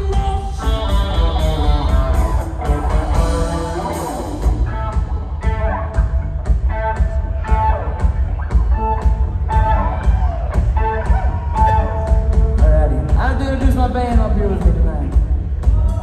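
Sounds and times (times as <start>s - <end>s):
electric guitar lead with bent notes: 0.0s - 13.4s
bass guitar: 0.0s - 16.0s
drums hitting: 0.0s - 16.0s.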